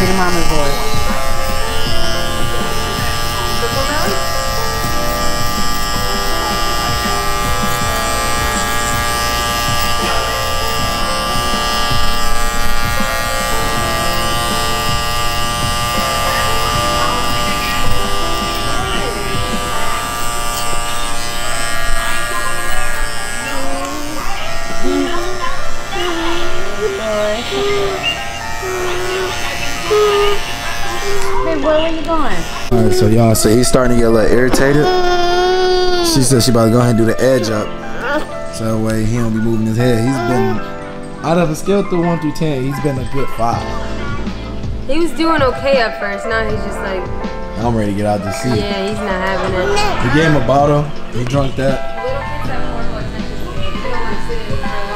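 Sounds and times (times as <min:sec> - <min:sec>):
electric hair clippers buzzing: 0:00.0 - 0:40.8, 0:48.4 - 0:52.3, 0:53.0 - 0:54.9
toddler fussing: 0:22.1 - 0:31.7, 0:34.6 - 0:36.8, 0:37.4 - 0:38.5, 0:39.9 - 0:40.8, 0:49.5 - 0:50.2.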